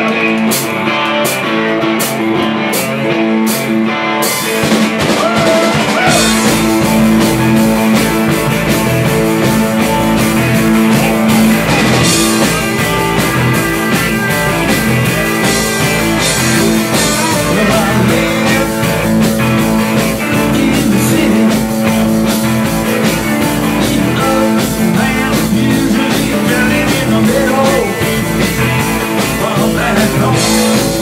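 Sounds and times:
drum kit rock beat: 0:00.0 - 0:31.0
electric bass: 0:00.0 - 0:31.0
electric guitars: 0:00.0 - 0:31.0.

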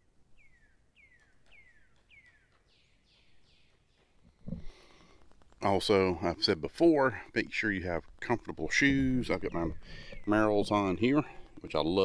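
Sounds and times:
songbird whistling: 0:00.4 - 0:04.0.

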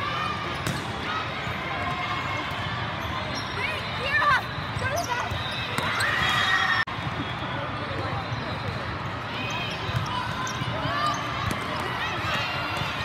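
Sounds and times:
volleyballs bouncing and struck: 0:00.4 - 0:01.1, 0:09.8 - 0:13.0.

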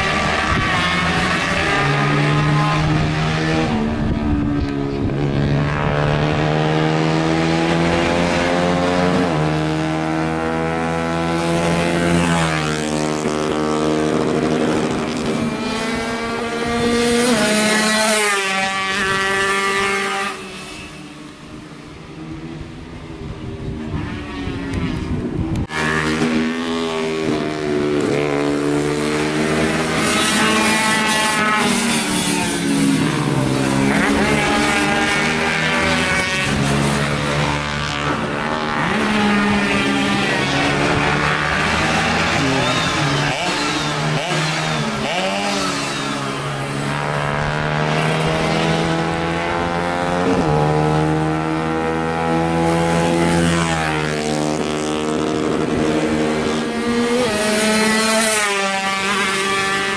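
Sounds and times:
race motorcycles revving: 0:00.0 - 0:59.9.

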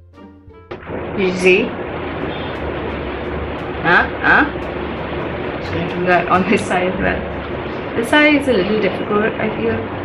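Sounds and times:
low hum: 0:00.0 - 0:09.2
electric fan hiss: 0:00.8 - 0:10.0.

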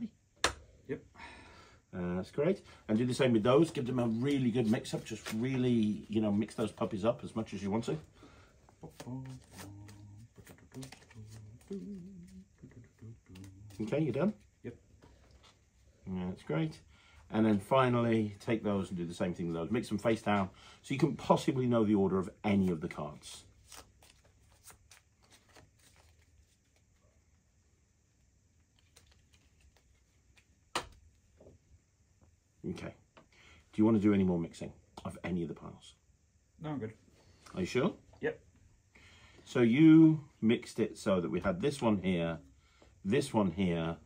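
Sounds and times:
playing cards shuffling: 0:03.5 - 0:07.9, 0:08.7 - 0:15.9, 0:22.5 - 0:27.0, 0:28.6 - 0:31.3
playing cards clicking: 0:08.8 - 0:12.0, 0:28.7 - 0:31.1
person humming: 0:08.8 - 0:13.8.

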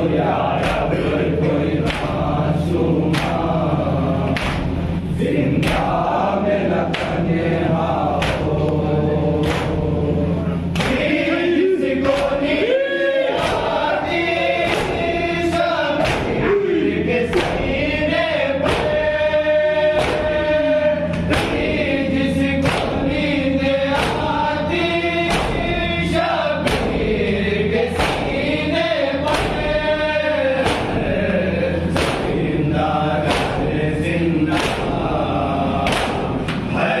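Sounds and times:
men chanting in unison: 0:00.0 - 0:37.0
person reciting: 0:00.0 - 0:37.0.

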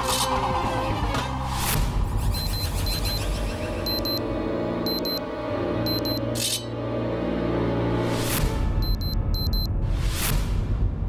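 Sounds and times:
short high beeps: 0:03.9 - 0:04.2, 0:04.9 - 0:05.2, 0:05.9 - 0:06.2, 0:08.8 - 0:09.7.

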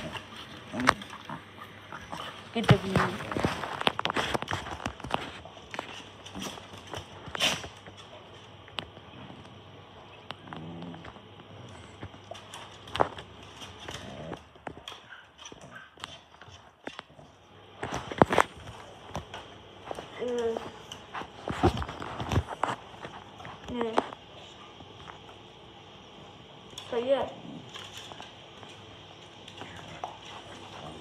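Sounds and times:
dogs grunting: 0:00.0 - 0:03.8, 0:09.0 - 0:12.6, 0:13.5 - 0:17.6, 0:29.5 - 0:31.0.

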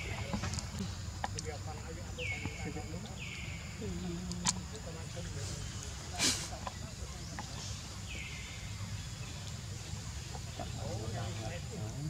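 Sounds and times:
clucking or chirping calls: 0:00.0 - 0:11.7.

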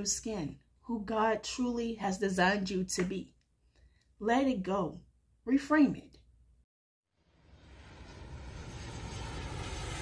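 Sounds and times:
low rumble: 0:07.2 - 0:10.0
whoosh riser sound effect: 0:07.4 - 0:10.0.

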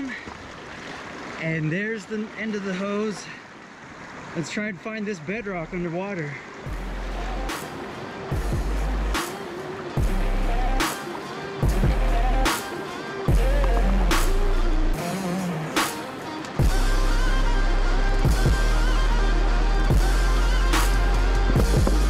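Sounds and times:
background music with steady beat: 0:06.6 - 0:22.0.

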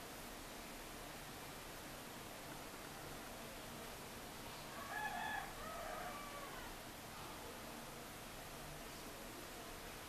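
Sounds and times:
background hiss: 0:00.0 - 0:10.0
faint rooster crowing: 0:04.6 - 0:06.9.

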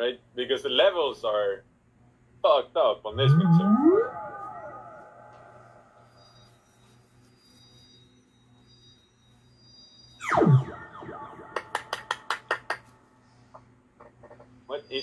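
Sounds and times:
faint held synthesizer tones: 0:03.0 - 0:12.3, 0:13.0 - 0:15.0
synth sweep falling in pitch: 0:03.1 - 0:06.1, 0:10.2 - 0:12.2
sharp claps: 0:11.5 - 0:13.0.

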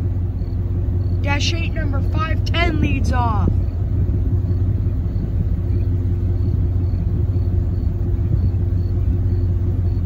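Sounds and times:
diesel engine drone: 0:00.0 - 0:10.0
train rumbling: 0:00.0 - 0:10.0.

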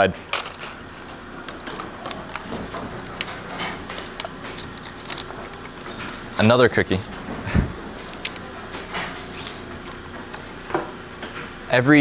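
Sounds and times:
fortune cookie cracking: 0:00.3 - 0:07.2, 0:07.9 - 0:10.8.

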